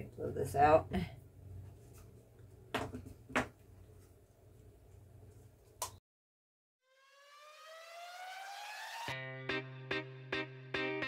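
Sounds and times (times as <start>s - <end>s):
electronic rising sweep: 6.9s - 9.2s.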